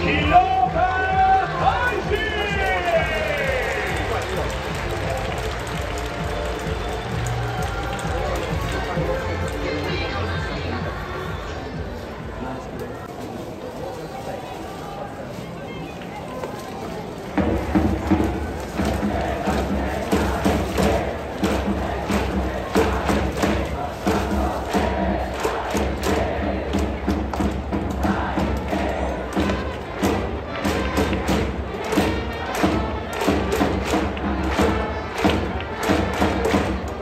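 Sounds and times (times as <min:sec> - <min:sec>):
drums beating: 0:00.0 - 0:12.4, 0:17.3 - 0:37.0
crowd chanting in unison: 0:17.4 - 0:37.0.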